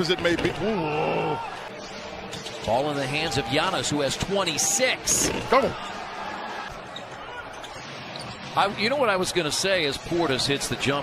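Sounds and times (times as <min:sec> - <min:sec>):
arena court ambience: 0:00.0 - 0:11.0.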